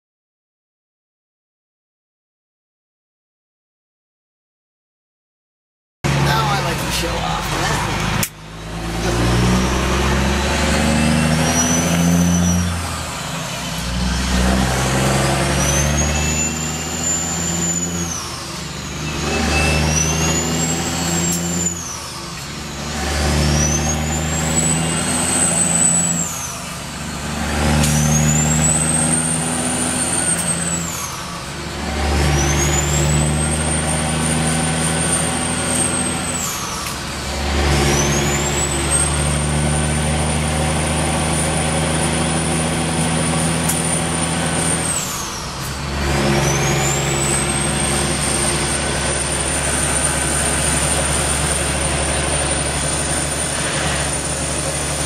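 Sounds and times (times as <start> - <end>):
diesel truck engine revving: 6.0 - 55.0.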